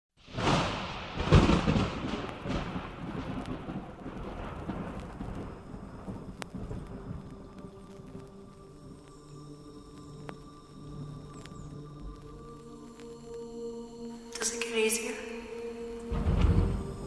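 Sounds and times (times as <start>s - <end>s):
rumbling thunderclap: 0.2s - 9.0s, 16.1s - 17.0s
steady rain: 0.2s - 17.0s
faint sustained synth tones: 4.4s - 17.0s.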